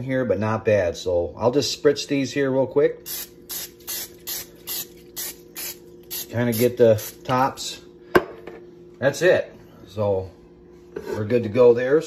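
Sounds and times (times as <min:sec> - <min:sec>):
spray can hissing spritzes: 0:03.1 - 0:07.2.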